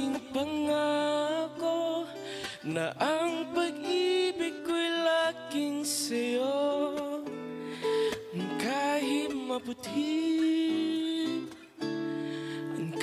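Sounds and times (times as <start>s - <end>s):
man singing into microphone: 0.0s - 7.4s, 8.0s - 11.7s, 12.7s - 13.0s.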